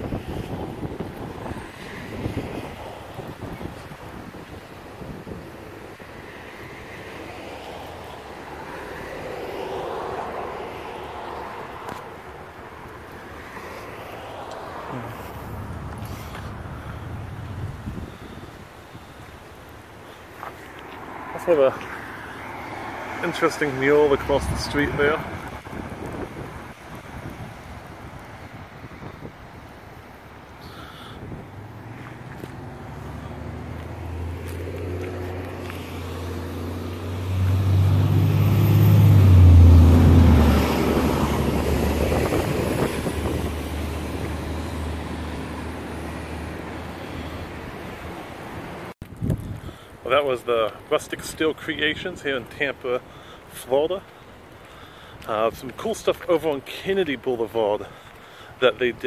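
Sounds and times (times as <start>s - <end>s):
wind buffeting microphone: 0.0s - 13.5s, 14.1s - 20.0s, 23.2s - 50.1s
traffic noise: 0.0s - 59.0s
vehicle passing: 6.2s - 49.0s.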